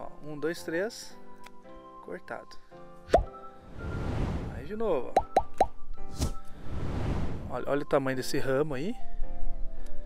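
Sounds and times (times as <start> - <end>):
background music: 0.0 - 10.0
cartoon pop sound effects: 3.1 - 3.4, 5.2 - 6.4
sharp snip: 5.2 - 6.4.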